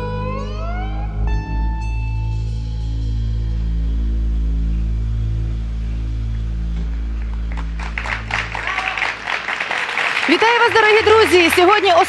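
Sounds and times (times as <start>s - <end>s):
low instrumental music: 0.0s - 9.6s
audience applauding: 7.2s - 12.0s
woman speaking: 10.3s - 12.0s.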